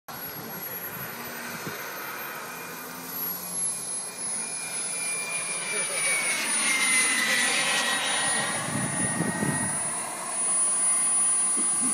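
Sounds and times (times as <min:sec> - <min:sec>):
model jet whining: 0:00.1 - 0:11.9.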